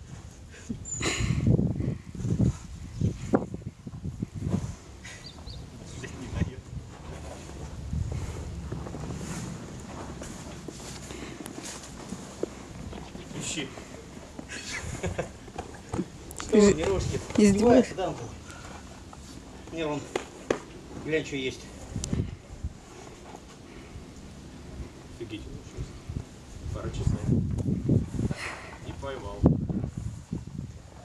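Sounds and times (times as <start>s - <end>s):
wind buffeting microphone: 0.0s - 13.5s, 21.8s - 23.0s, 23.9s - 31.0s.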